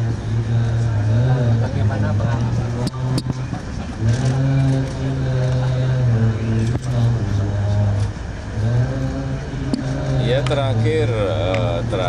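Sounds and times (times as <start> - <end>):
engine running with low hum: 0.0 - 12.0.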